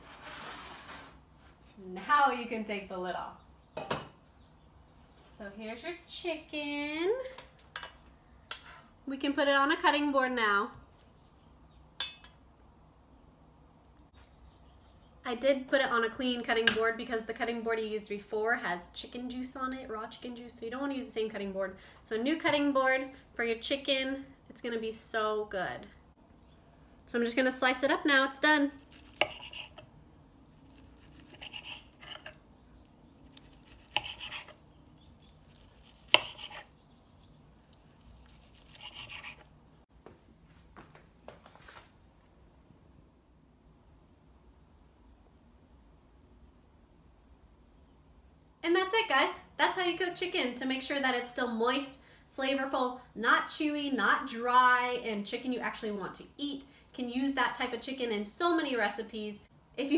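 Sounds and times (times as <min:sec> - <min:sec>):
knife slicing chicken: 0:28.9 - 0:29.9, 0:30.7 - 0:32.4, 0:33.3 - 0:34.6, 0:35.4 - 0:36.7, 0:37.8 - 0:39.5.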